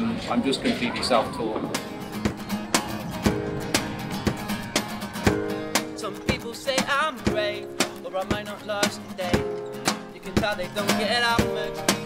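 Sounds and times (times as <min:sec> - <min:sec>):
acoustic guitar strumming: 0:01.7 - 0:12.0.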